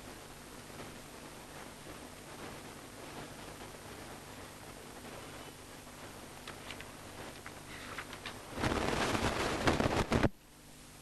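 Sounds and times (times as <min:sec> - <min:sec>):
book pages rustling: 0:06.4 - 0:10.2.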